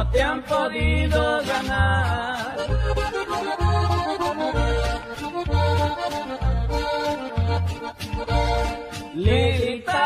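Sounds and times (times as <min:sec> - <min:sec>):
person singing: 0:00.0 - 0:04.5, 0:09.0 - 0:10.0
low bass notes: 0:00.0 - 0:09.8
accordion playing: 0:00.0 - 0:10.0.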